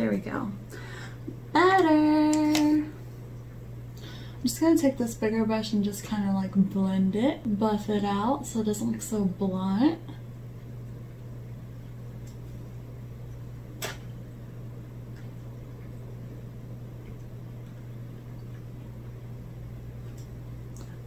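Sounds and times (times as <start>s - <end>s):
low room tone hum: 0.0s - 21.0s.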